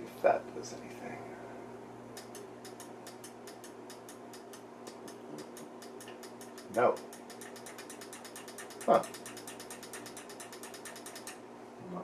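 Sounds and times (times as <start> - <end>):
rapid mechanical ticking: 2.2 - 11.4.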